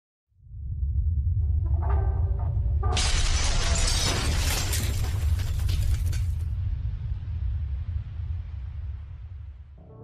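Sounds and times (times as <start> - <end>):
deep steady rumble: 0.4 - 9.9
debris crashing and shattering: 2.9 - 6.6.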